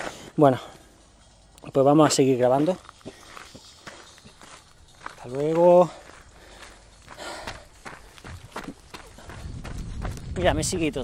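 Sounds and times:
footsteps on dirt track: 0.0s - 11.0s
person breathing out: 6.3s - 7.7s.

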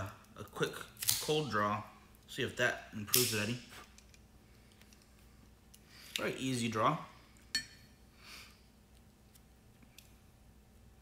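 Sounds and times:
soft breath of air: 8.1s - 8.8s.

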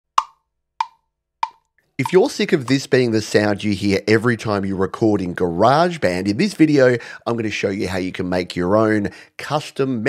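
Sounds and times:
metronome clicks: 0.2s - 2.8s.

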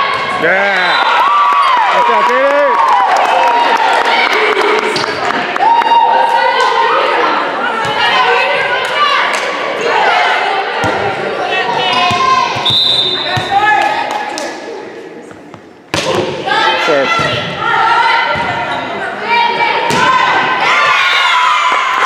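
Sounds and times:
spectators talking: 3.5s - 20.9s
referee whistle: 12.6s - 13.5s.

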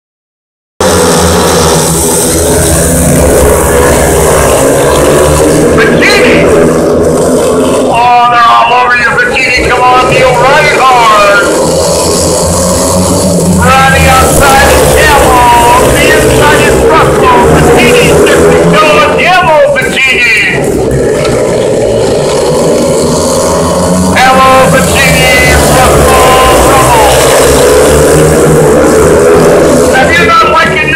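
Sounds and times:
motorcycle engines revving: 0.8s - 30.9s.

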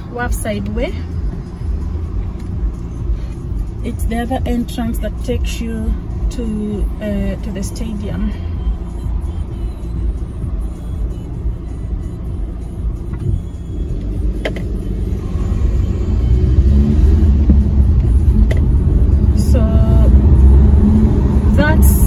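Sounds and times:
car road and engine rumble: 0.0s - 22.0s.

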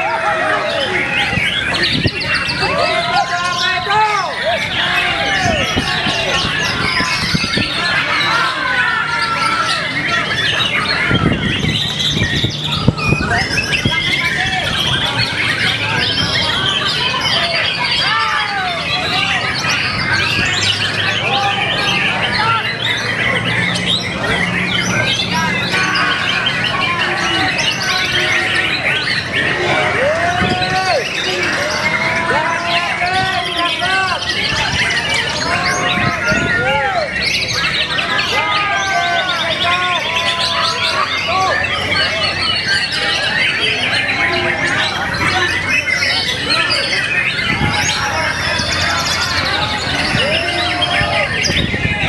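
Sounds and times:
birds singing: 0.0s - 52.0s.

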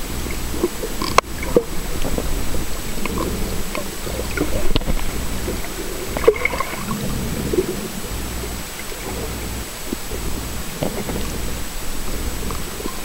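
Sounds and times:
muffled underwater water rumble: 0.0s - 13.0s
clicks and crackles: 0.2s - 13.0s.

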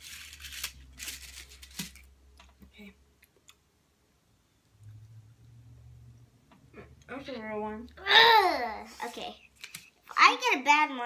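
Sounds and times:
paper rustling and crinkling: 0.0s - 2.1s.

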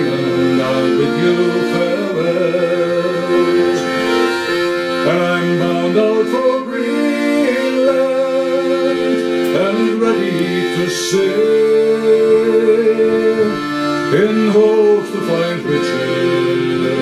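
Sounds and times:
man singing folk tune: 0.0s - 17.0s
piano accordion playing: 0.0s - 17.0s.

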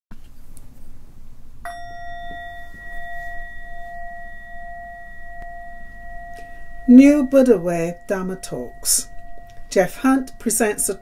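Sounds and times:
meditation bell ringing: 1.7s - 11.0s.

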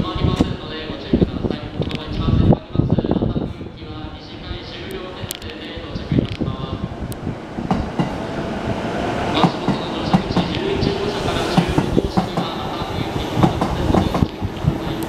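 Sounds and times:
train wheels clicking over rail joints: 7.1s - 8.3s, 9.3s - 15.0s.

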